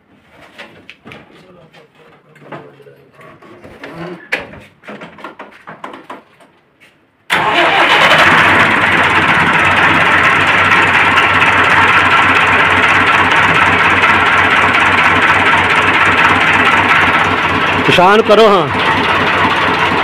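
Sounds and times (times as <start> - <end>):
tractor diesel engine starting and idling: 7.3 - 20.0.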